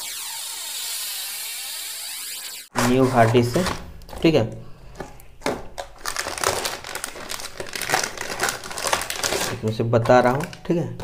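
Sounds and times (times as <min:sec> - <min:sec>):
plastic bag crinkling: 0:02.8 - 0:10.7.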